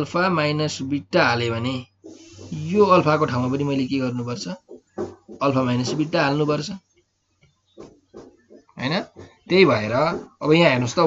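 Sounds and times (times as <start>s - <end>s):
man speaking: 0.0s - 4.6s, 5.4s - 6.8s, 8.8s - 11.0s.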